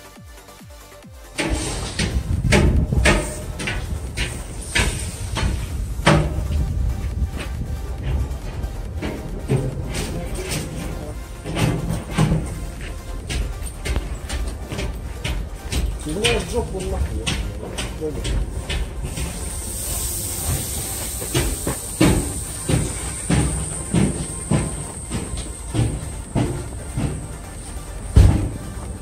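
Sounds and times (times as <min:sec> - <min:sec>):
footsteps on station platform: 0:00.0 - 0:29.0
steady high hiss: 0:00.9 - 0:29.0
low rumble: 0:01.3 - 0:29.0
people's voices: 0:01.4 - 0:29.0.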